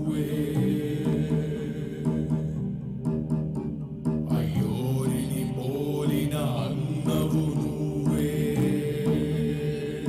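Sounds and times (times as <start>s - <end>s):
soundtrack music with chant vocals: 0.0s - 10.0s.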